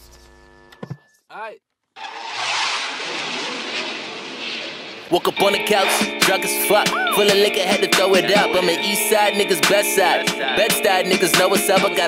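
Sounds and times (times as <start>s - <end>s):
steady rushing noise: 2.3s - 6.5s.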